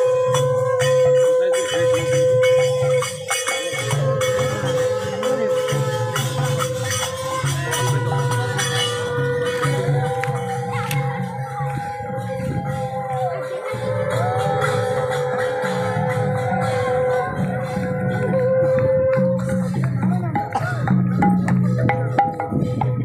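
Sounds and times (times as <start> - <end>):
devotional processional music: 0.0 - 23.0
jingling hand cymbals: 0.0 - 23.0
rhythmic percussion: 0.0 - 23.0.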